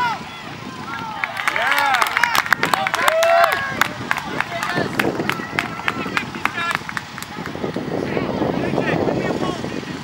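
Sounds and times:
young players shouting: 0.0s - 8.4s.

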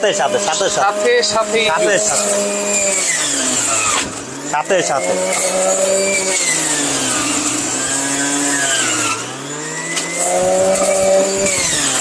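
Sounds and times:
juicer motor running at high speed: 0.0s - 12.0s.

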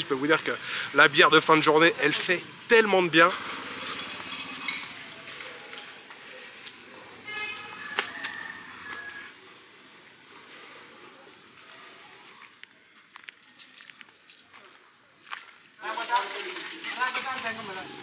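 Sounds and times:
distant voices: 0.0s - 15.2s.

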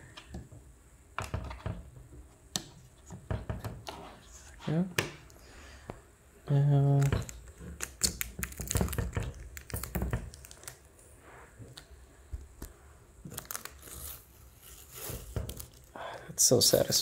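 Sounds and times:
plastic film peeling and crinkling: 6.9s - 11.0s, 12.6s - 15.9s.

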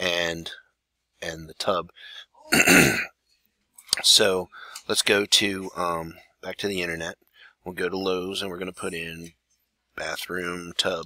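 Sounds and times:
man coughing: 2.5s - 3.1s.

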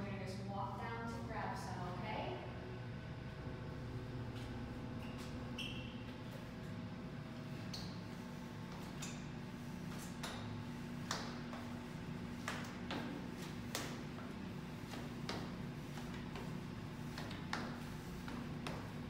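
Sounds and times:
steady low hum: 0.0s - 19.0s
short high squeaks: 5.1s - 6.1s
footsteps walking down stairs: 7.4s - 19.0s.

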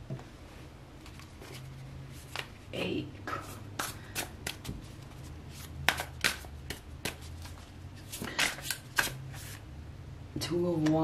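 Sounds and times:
cards being shuffled: 1.0s - 2.6s, 3.8s - 9.6s.

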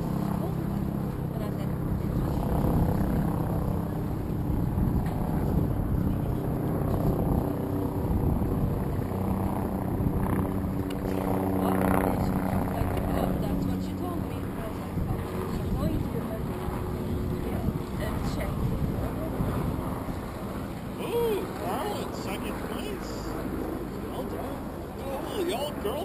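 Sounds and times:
low motor drone: 0.0s - 26.0s
indistinct voices talking: 20.9s - 26.0s.

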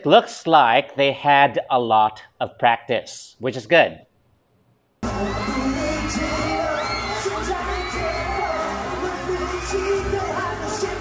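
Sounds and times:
backing track with steady beat: 5.0s - 11.0s
boy band singing pop song: 5.0s - 11.0s
crowd noise: 5.0s - 11.0s.

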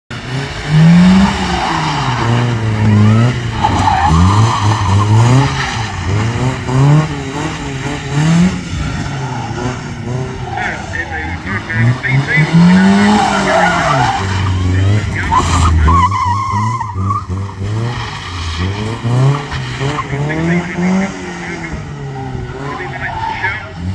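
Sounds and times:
car engine revving: 0.1s - 23.9s
tyres squealing and skidding: 0.5s - 23.9s.

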